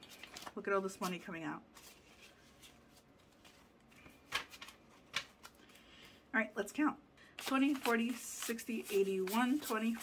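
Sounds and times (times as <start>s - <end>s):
banknotes rustling: 0.0s - 6.0s, 7.4s - 10.0s.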